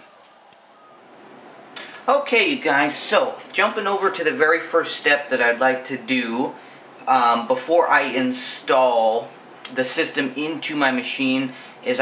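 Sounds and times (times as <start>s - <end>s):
faint room hiss: 0.0s - 12.0s
man speaking: 1.8s - 12.0s.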